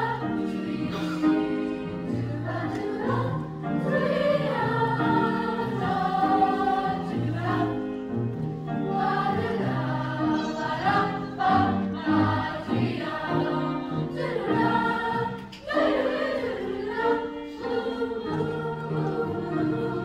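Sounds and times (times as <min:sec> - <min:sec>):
youth choir singing: 0:00.0 - 0:20.0.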